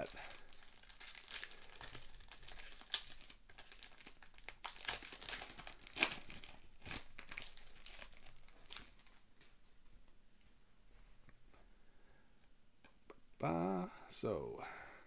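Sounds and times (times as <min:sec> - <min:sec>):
foil wrapper crinkling: 0:00.0 - 0:09.2.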